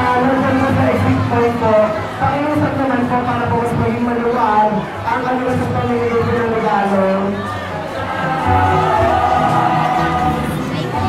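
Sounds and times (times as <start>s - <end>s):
busy crowd: 0.0s - 11.0s
music with long held notes: 7.5s - 11.0s.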